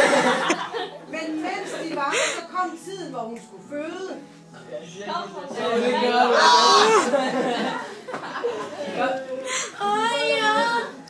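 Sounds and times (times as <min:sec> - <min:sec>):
person imitating baby crying: 0:06.3 - 0:07.2.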